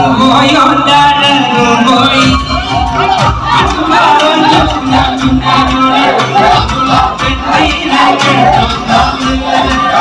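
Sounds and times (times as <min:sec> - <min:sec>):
crowd shouting and cheering: 0:00.0 - 0:10.0
live band music with drum beat: 0:01.6 - 0:10.0.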